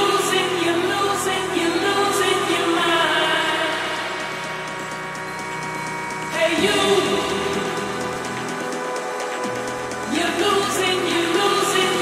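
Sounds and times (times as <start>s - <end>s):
techno music: 0.0s - 12.0s.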